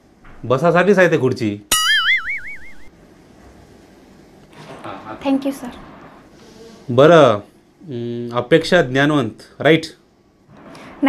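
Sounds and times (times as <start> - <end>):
wobbling cartoon tone: 1.7 - 2.9.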